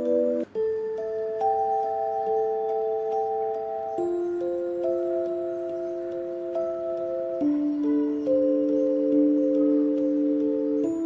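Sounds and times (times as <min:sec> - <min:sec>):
light ticking beat: 0:00.0 - 0:11.0
soft bell-like notes: 0:00.0 - 0:11.0.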